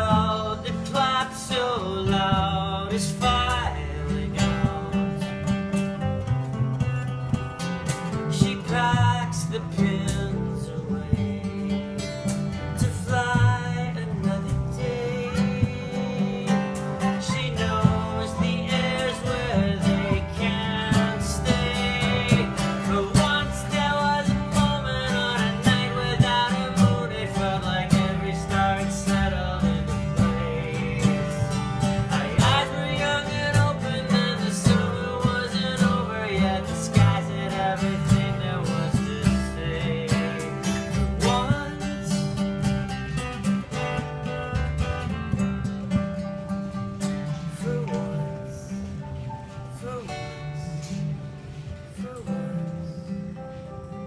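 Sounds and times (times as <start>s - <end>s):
acoustic guitar: 0.0s - 54.0s
upright bass: 0.0s - 54.0s.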